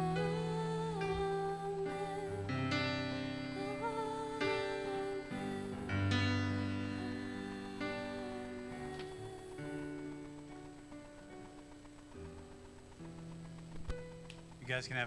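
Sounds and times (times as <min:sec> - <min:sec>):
worship band playing soft chords: 0:00.0 - 0:15.0.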